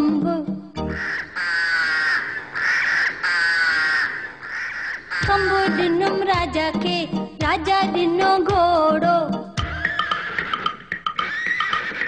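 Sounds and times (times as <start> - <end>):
harsh crow-like calls: 0.9 - 6.0, 9.6 - 12.0.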